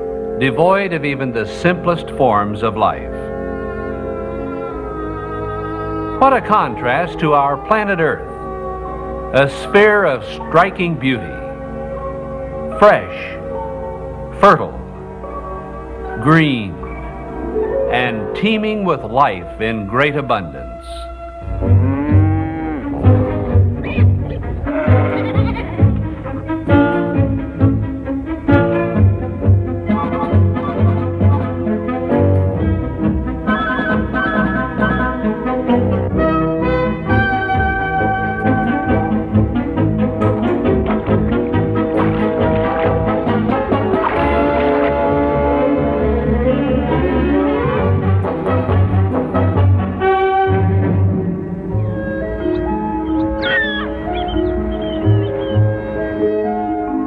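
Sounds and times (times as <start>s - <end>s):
orchestral music with bass beat: 21.1s - 56.2s
sheep bleating: 21.8s - 23.0s, 24.7s - 26.0s, 53.4s - 55.6s
gull calls: 51.8s - 56.5s.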